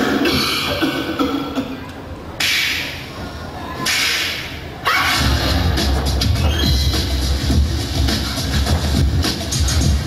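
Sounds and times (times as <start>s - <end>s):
loud electronic music: 3.9s - 10.0s.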